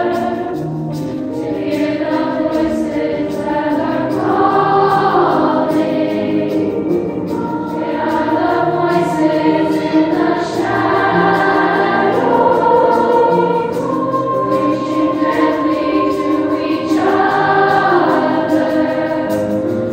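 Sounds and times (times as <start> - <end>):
children's choir singing in harmony: 0.0 - 19.9.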